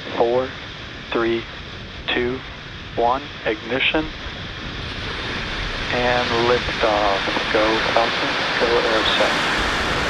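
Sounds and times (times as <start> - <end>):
rocket engines rushing roar: 0.0 - 10.0.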